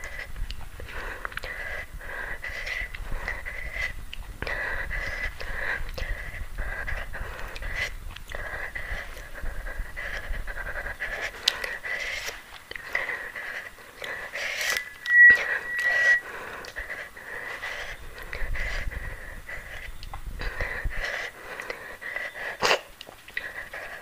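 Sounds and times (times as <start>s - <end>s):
woman breathing hard: 0.0s - 22.6s
high whistle in breath: 14.5s - 16.9s.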